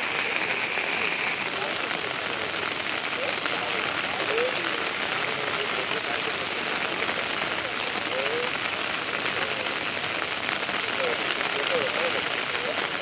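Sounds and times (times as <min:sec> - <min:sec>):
heavy rain falling: 0:00.0 - 0:13.0.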